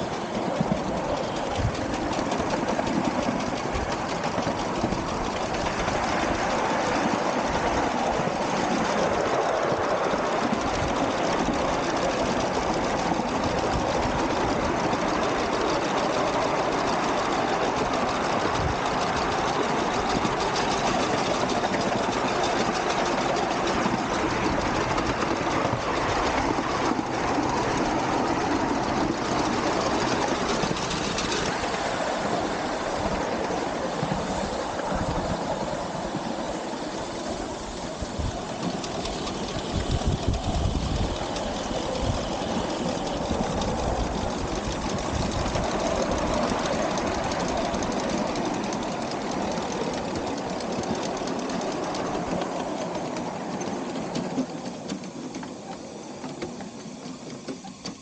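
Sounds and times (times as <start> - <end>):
miniature steam locomotive running: 0.0 - 58.0
wheels clattering on track: 0.0 - 58.0.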